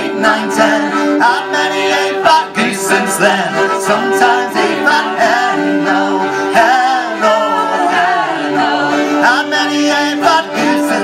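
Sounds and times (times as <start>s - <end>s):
button accordion: 0.0s - 11.0s
fiddles: 0.0s - 11.0s
folk band singing in harmony: 0.0s - 11.0s.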